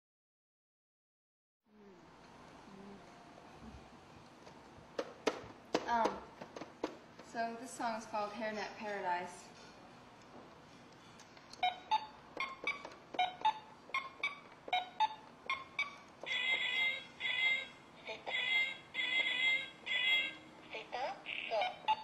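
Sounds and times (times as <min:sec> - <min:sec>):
toy keyboard plucked notes: 0:11.6 - 0:20.4, 0:21.5 - 0:22.0
high buzzy toy tones: 0:11.7 - 0:22.0.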